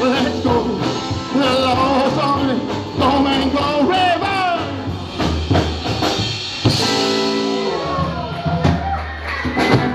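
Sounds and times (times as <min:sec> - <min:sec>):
rockabilly band playing live: 0:00.0 - 0:09.9.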